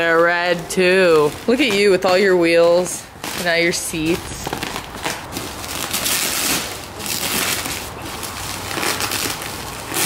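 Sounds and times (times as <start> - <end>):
bubble wrap rustling and crinkling: 0.0 - 10.0.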